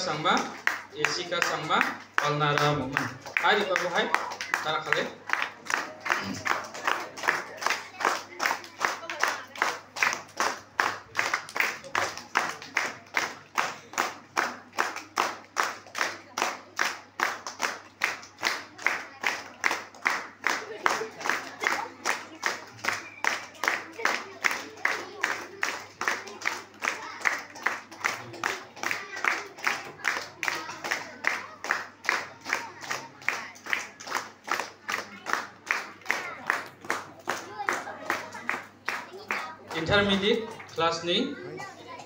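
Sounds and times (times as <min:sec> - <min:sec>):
hands clapping steady beat: 0:00.0 - 0:40.9.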